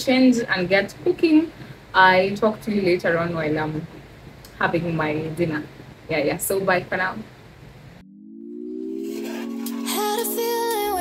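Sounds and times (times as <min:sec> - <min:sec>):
background music low chord: 0:08.0 - 0:11.0.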